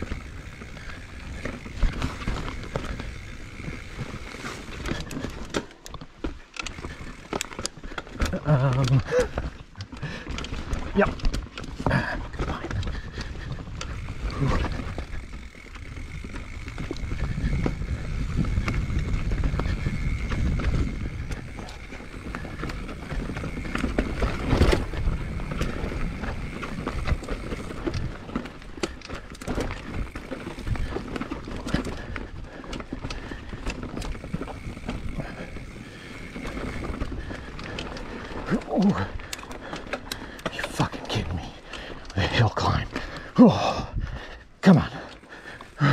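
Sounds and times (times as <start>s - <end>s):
tyres rumbling on dirt: 0.0s - 43.9s
bike frame rattling over rocks: 0.0s - 45.9s.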